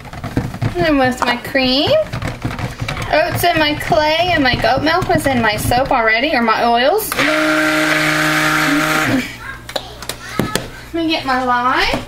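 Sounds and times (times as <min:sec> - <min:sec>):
stick blender motor humming: 0:07.1 - 0:09.4.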